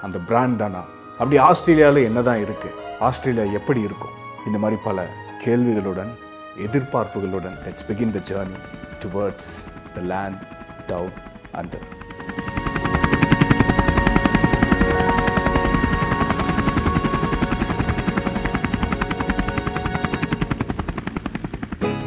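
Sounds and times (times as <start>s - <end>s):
helicopter rotor chopping: 5.8s - 22.0s
steady high tones: 8.5s - 21.6s.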